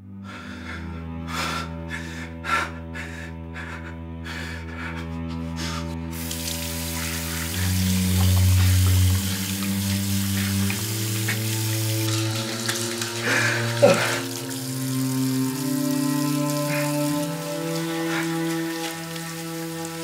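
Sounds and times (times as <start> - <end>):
low sustained score chords: 0.0 - 20.0
water running into sink: 6.2 - 20.0
breathy gasps: 13.2 - 14.4.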